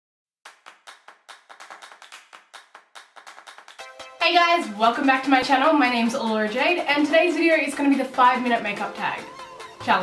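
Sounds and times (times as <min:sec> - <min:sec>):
hand claps in a beat: 0:00.4 - 0:04.2.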